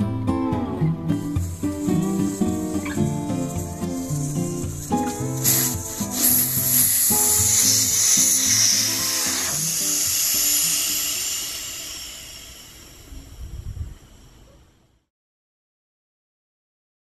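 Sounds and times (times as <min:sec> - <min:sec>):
background music: 0:00.0 - 0:10.2
air hissing out of tyre valve: 0:01.0 - 0:14.6.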